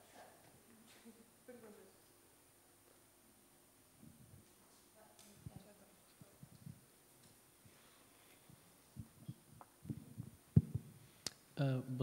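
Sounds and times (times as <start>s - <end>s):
microphone handling thumps: 8.4s - 11.1s.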